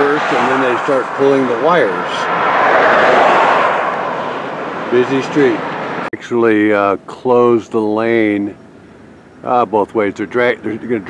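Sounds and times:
road vehicle passing: 0.0s - 6.1s.

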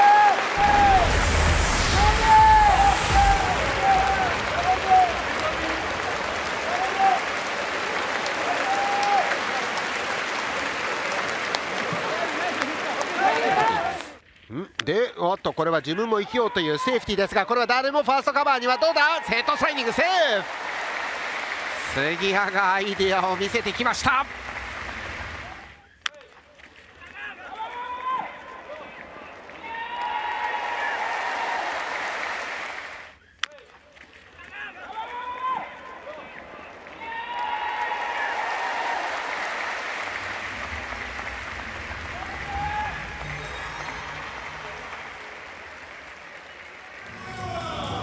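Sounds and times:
crowd clapping and cheering: 0.0s - 14.2s, 18.2s - 48.0s.

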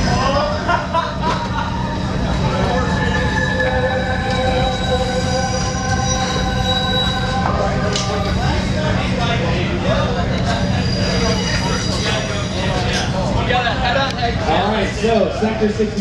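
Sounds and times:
people talking: 0.0s - 4.9s, 7.2s - 16.0s
deep continuous rumble: 0.0s - 16.0s
train wheels squealing on rails: 1.6s - 8.9s, 9.9s - 13.2s.

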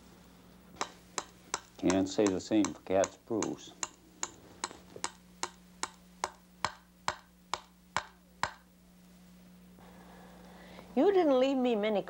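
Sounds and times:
faint low hum: 0.0s - 12.0s
knife striking wooden board: 0.8s - 8.6s.

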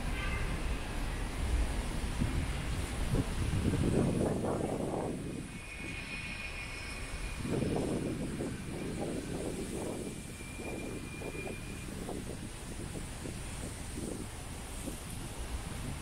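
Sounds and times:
low rushing street noise: 0.0s - 16.0s
faint high whine: 4.9s - 12.2s.

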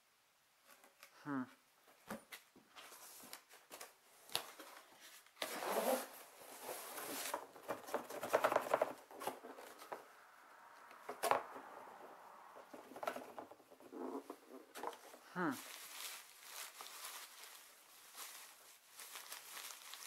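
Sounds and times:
cardboard sheet rustling: 1.9s - 20.0s
plastic packing crinkling: 14.2s - 20.0s.

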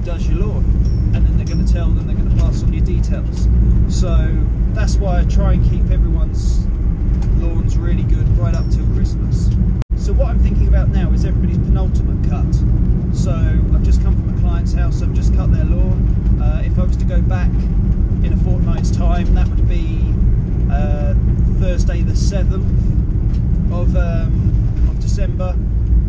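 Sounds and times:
man talking: 0.0s - 6.7s, 7.3s - 22.8s, 23.7s - 25.6s
van engine rumble from cab: 0.0s - 26.0s.

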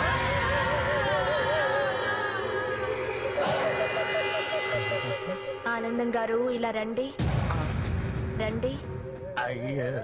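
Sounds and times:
warbling alarm-like tone: 0.0s - 6.3s
steady held tone: 0.1s - 6.6s.

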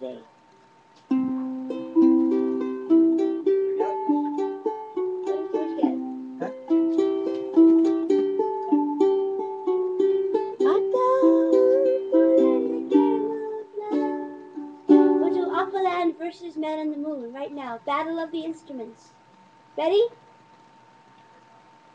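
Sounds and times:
ukulele chords: 1.1s - 16.2s.

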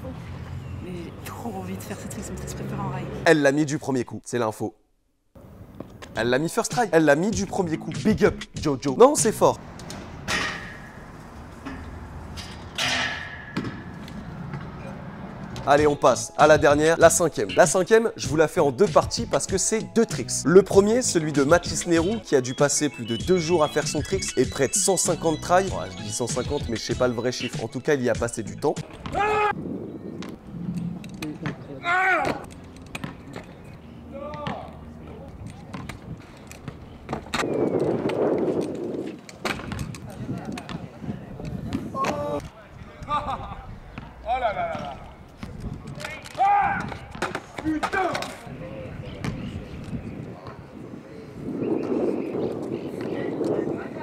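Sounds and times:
person shouting: 29.1s - 29.6s, 31.8s - 32.4s, 46.4s - 46.9s.

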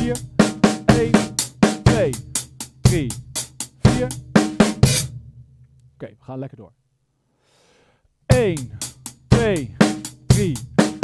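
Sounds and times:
drum kit groove: 0.0s - 5.4s, 8.3s - 11.0s.

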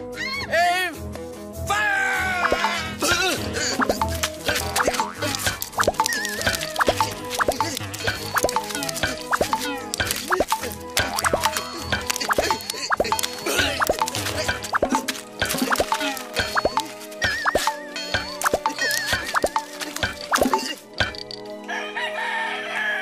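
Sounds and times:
upbeat background music: 0.0s - 22.4s
cartoon plop sound effects: 2.4s - 2.8s, 3.7s - 19.7s, 20.3s - 20.7s.

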